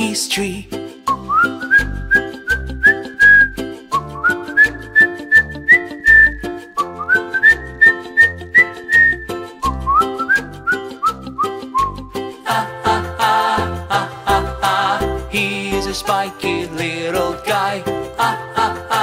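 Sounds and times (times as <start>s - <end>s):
whistled tune: 1.0s - 12.2s
bass and steady beat: 1.8s - 12.2s.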